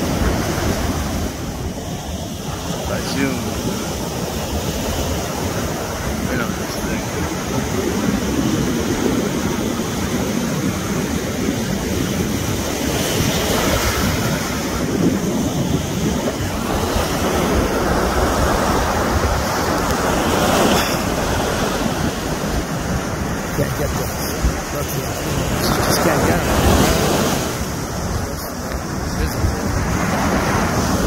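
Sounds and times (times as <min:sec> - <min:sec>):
ocean surf: 0:00.0 - 0:31.0
wind over microphone: 0:00.0 - 0:31.0.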